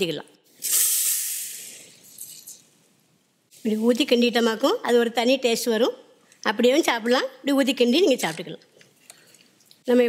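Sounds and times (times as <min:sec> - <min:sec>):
hot oil sizzling: 0:00.6 - 0:01.8.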